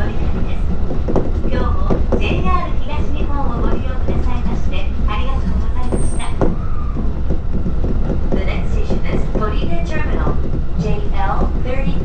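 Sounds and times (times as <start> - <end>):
train wheels rumbling on rails: 0.0 - 12.0
onboard announcement: 1.4 - 6.6, 8.3 - 12.0.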